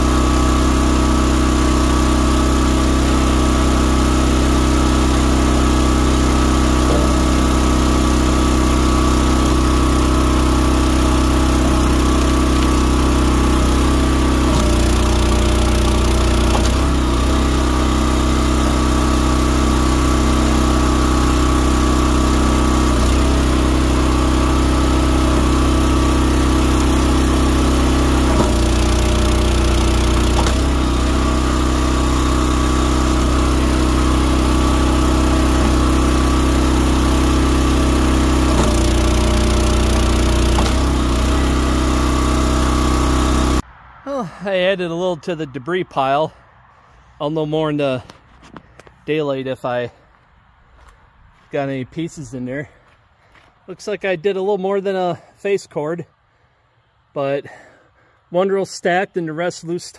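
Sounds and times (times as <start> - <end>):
log splitter engine running: 0.0 - 43.6.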